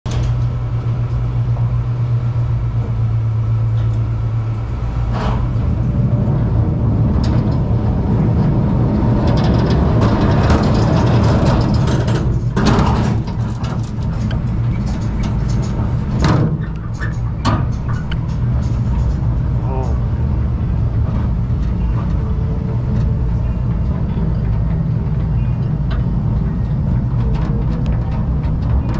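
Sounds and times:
low mechanical hum: 0.0 - 28.9
roller coaster rumbling on track: 0.0 - 28.9.

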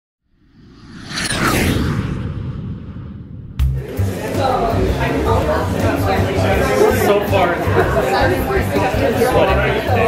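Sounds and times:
whoosh: 0.3 - 4.6
low rumble: 0.4 - 5.1
quick falling sweep: 0.5 - 4.0.

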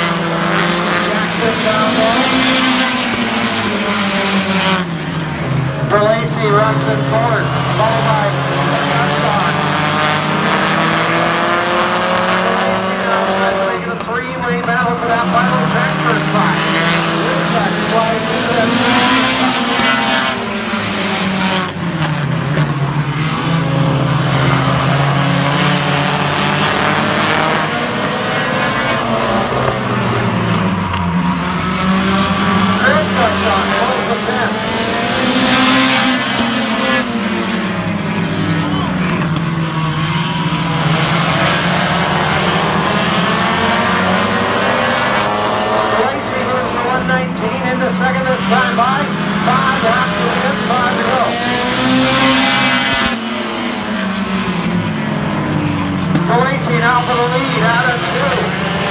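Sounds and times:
race car engines: 0.0 - 58.9.

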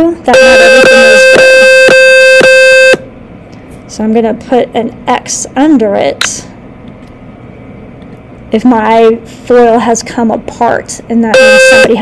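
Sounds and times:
buzzy electronic alarm beep: 0.3 - 3.0, 11.4 - 12.0.

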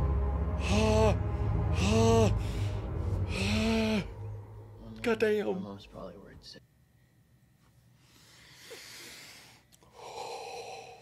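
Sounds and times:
person exhaling hard: 1.8 - 4.3.

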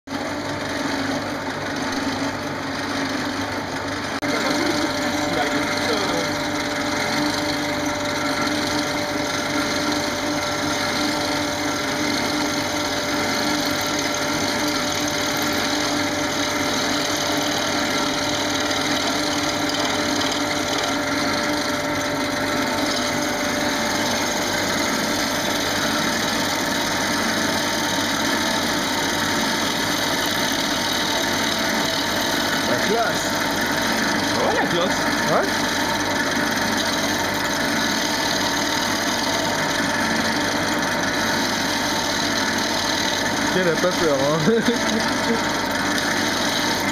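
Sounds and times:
dust collector whine: 0.1 - 46.9
wood lathe whirring: 0.1 - 46.9.

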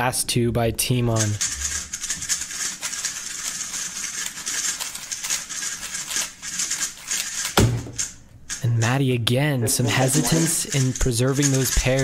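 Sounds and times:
puzzle cube clicking and rattling: 1.0 - 9.0, 9.9 - 12.0
hands slapping timer pads: 7.2 - 8.2.

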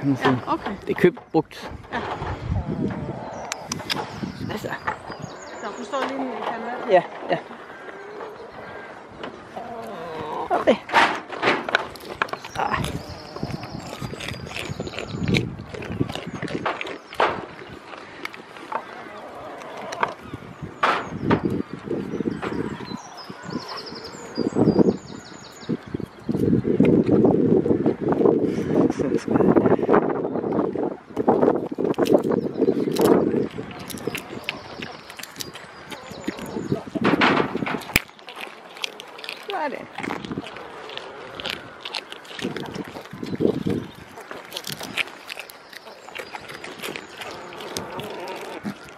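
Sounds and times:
goat muzzle rubbing microphone: 11.7 - 29.6, 31.3 - 48.9.

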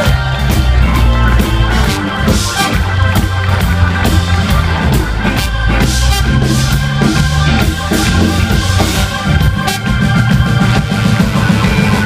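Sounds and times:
drum kit beat: 0.0 - 12.0
soul band playing: 0.0 - 12.0
trombone and trumpet: 0.0 - 12.0.

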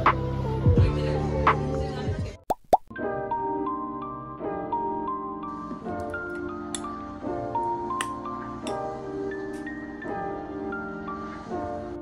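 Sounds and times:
background music: 0.0 - 12.0
rising pop sound effects: 2.5 - 3.0.

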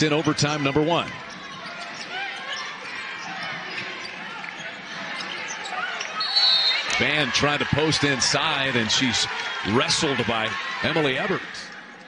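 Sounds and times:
sneaker squeaks: 1.2 - 6.9.

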